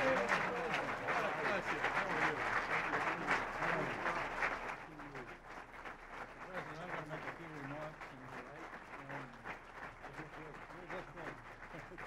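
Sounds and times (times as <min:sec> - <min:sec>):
voices: 0:00.0 - 0:05.3
audience applauding: 0:00.0 - 0:12.0.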